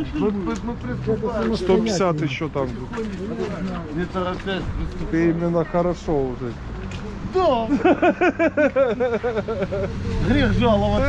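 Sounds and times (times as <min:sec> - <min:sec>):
person laughing: 0:07.7 - 0:10.0.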